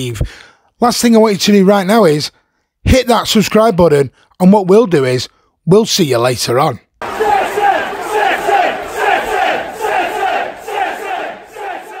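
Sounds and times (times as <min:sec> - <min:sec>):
football crowd chanting: 0:07.0 - 0:12.0.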